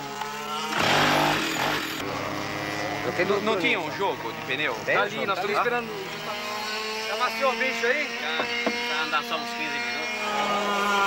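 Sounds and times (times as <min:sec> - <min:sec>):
go-kart engine buzzing: 0:00.0 - 0:11.0
people talking: 0:02.1 - 0:11.0.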